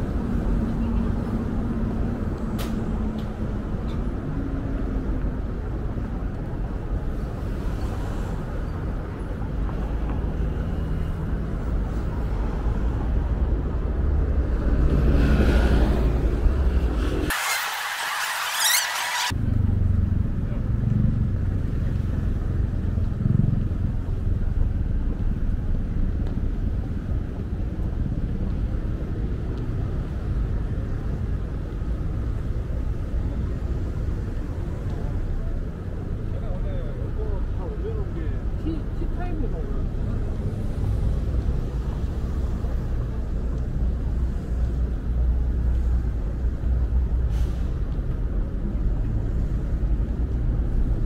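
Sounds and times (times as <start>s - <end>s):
indistinct voices of passers-by: 0.0s - 51.0s.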